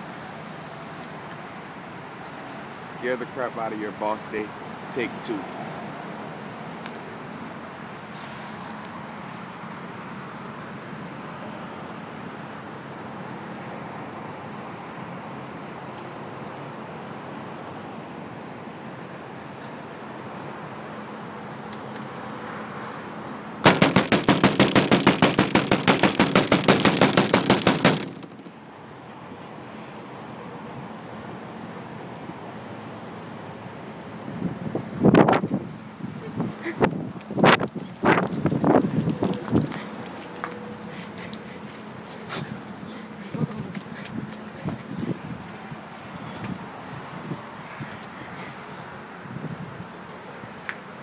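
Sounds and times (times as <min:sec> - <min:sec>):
rapid sharp bangs: 0:23.6 - 0:28.5.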